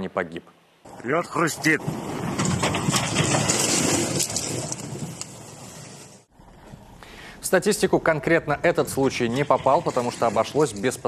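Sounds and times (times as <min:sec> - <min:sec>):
river ice crunching and crackling: 0:01.7 - 0:06.3, 0:09.0 - 0:11.0.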